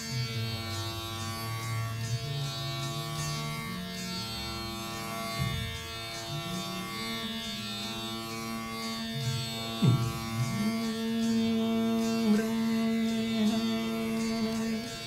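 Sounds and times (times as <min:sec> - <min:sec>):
veena playing bending low notes: 0:00.0 - 0:15.0.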